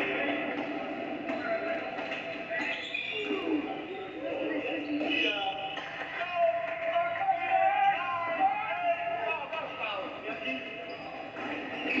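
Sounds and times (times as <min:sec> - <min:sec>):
voices in a gym: 0:00.0 - 0:12.0.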